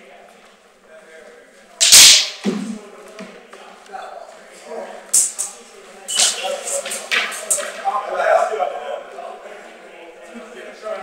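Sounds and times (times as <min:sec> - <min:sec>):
swords clashing: 0:01.8 - 0:02.6.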